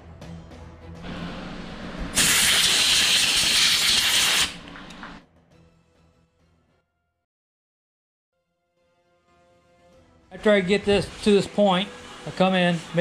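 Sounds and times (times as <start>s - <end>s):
background music: 0.0s - 2.2s, 4.6s - 7.2s, 8.4s - 13.0s
loud steady hiss: 2.2s - 4.6s.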